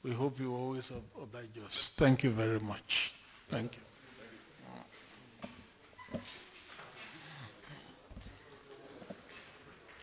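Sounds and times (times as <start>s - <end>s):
murmur of voices: 3.7s - 10.0s.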